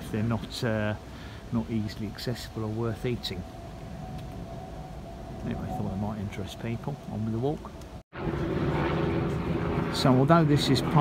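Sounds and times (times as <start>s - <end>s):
steady engine drone: 8.2s - 11.0s.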